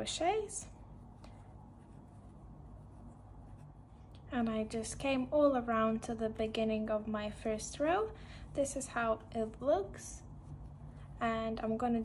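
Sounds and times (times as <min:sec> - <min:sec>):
yarn rubbing on crochet hook: 0:00.0 - 0:03.9
low room hum: 0:00.0 - 0:12.0.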